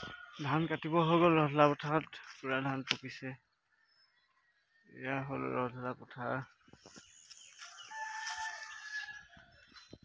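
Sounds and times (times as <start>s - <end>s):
rooster crowing: 7.6s - 9.6s.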